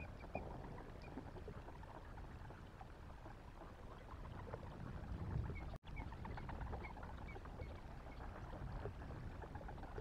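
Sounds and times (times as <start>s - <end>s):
water lapping: 0.0s - 10.0s.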